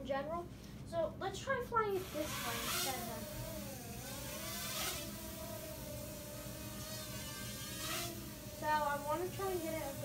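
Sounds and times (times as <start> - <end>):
toy drone propellers whirring: 2.0 - 10.0.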